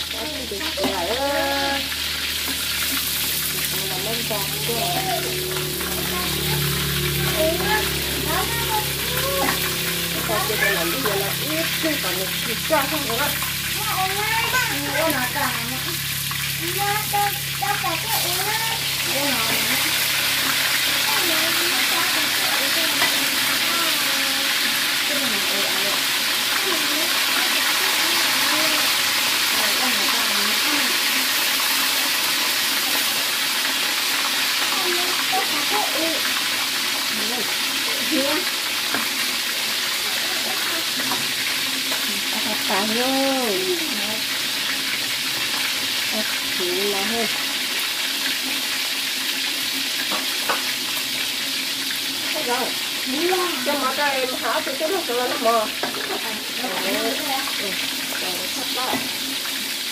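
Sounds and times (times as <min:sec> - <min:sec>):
fish sizzling in hot oil: 0:00.0 - 0:59.9.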